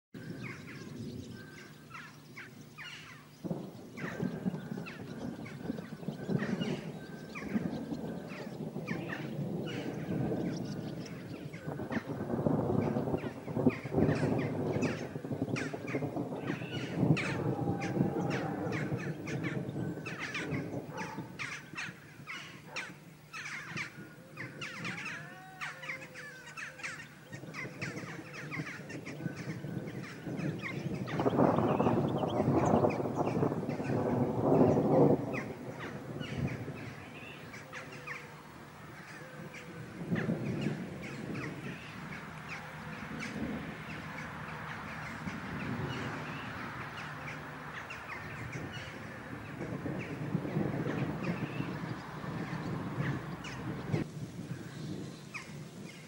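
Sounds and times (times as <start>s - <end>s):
harsh rasping bird calls: 0.2s - 12.2s, 12.8s - 54.7s.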